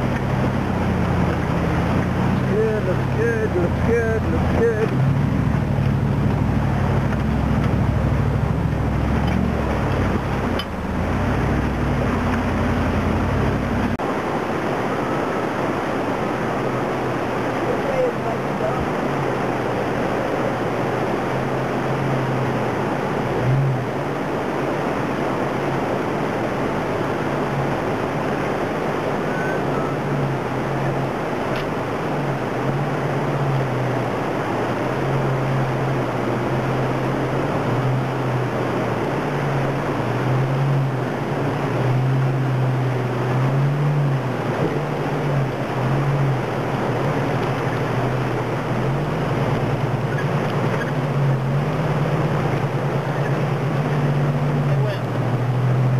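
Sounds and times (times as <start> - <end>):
buggy engine at low revs: 0.0 - 55.9
creek water rushing over rocks: 0.0 - 55.9.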